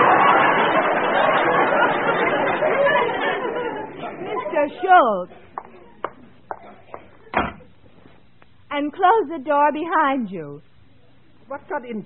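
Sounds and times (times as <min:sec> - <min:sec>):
studio audience laughing: 0:00.0 - 0:04.9.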